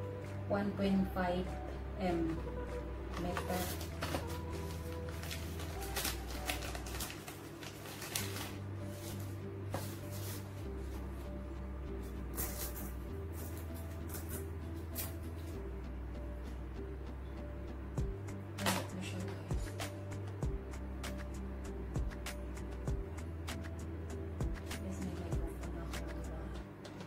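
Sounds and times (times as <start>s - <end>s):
plastic package rustling: 3.1s - 10.9s, 12.3s - 15.6s
background music with bass line: 8.4s - 27.0s.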